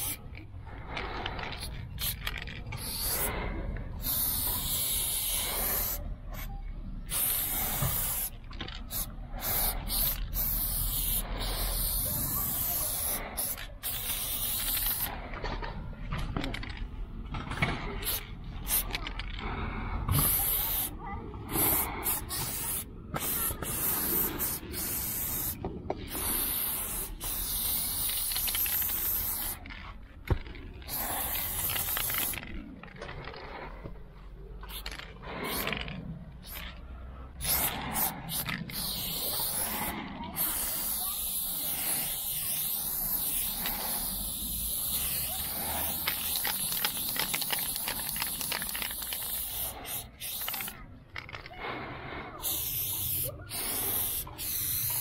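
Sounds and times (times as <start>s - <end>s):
spray paint can hissing: 0.0s - 15.3s, 18.0s - 19.2s, 20.1s - 33.4s, 34.6s - 51.5s, 52.4s - 55.0s.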